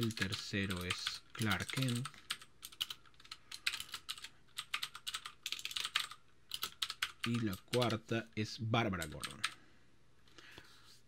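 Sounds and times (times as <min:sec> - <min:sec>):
computer keyboard typing: 0:00.0 - 0:08.0, 0:09.0 - 0:09.6.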